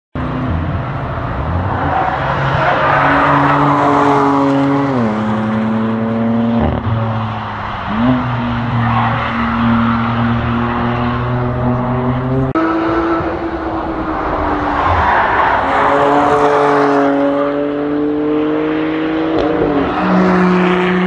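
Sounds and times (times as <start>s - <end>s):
car engines passing: 0.2s - 21.0s
car accelerating away: 15.9s - 21.0s.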